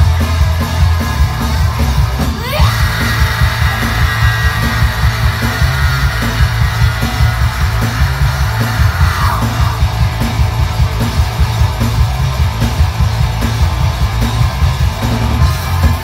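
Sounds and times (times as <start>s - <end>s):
drums driving a beat: 0.0s - 16.0s
guitars: 0.0s - 16.0s
punk rock band playing: 0.0s - 16.0s.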